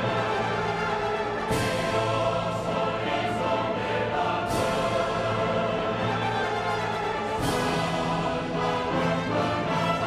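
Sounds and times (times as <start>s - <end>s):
orchestra and chorus operatic music: 0.0s - 10.0s.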